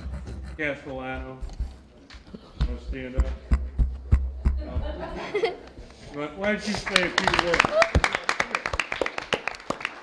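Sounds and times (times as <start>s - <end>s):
small audience clapping: 6.4s - 10.0s.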